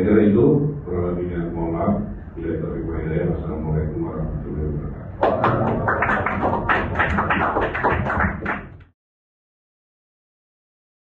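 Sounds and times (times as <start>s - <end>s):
people applauding: 5.2s - 8.9s.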